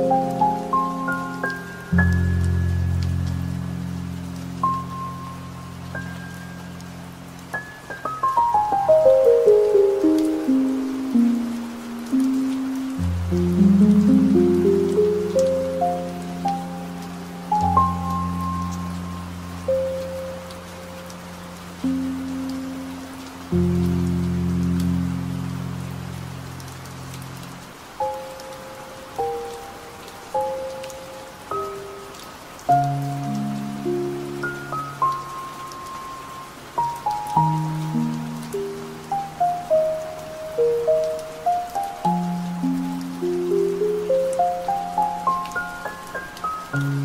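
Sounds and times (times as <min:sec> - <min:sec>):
slow piano melody: 0:00.0 - 0:47.0
steady rain: 0:00.0 - 0:47.0.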